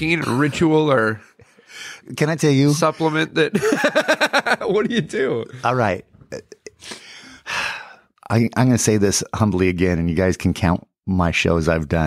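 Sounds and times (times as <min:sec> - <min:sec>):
noisy breaths: 0:01.2 - 0:02.1, 0:06.8 - 0:08.2.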